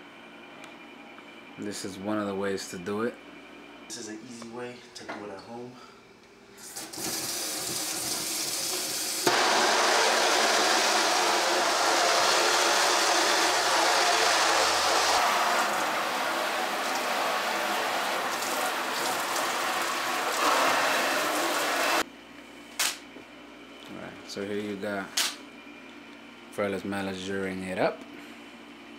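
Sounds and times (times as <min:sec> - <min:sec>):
sink sprayer blasting water: 0:06.6 - 0:22.0.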